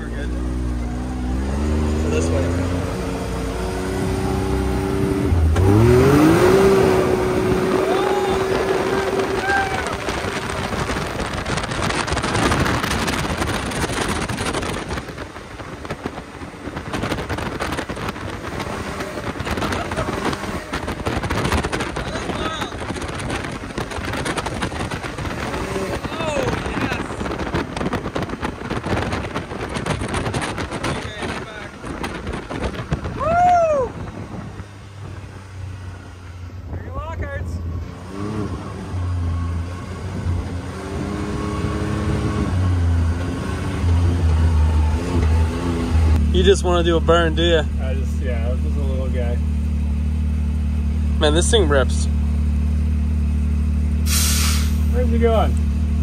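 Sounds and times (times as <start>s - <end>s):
engine accelerating hard: 0.0s - 56.0s
wind rush: 3.3s - 37.5s.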